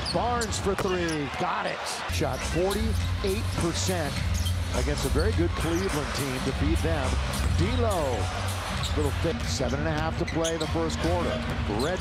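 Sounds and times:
arena crowd noise: 0.0 - 12.0
music: 2.1 - 12.0.

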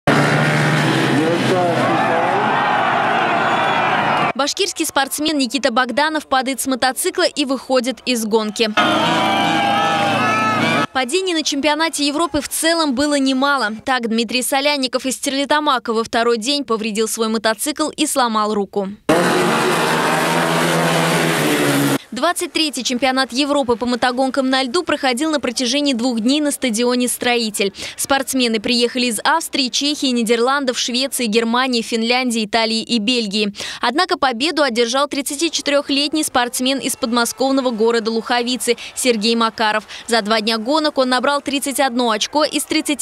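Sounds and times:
motorcycles racing: 0.1 - 3.0, 19.1 - 22.0
motorcycle engine at high revs: 19.1 - 22.0.

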